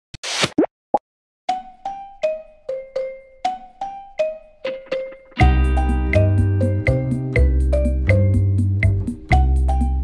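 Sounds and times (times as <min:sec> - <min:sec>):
ringing percussive music notes: 0:01.6 - 0:10.0.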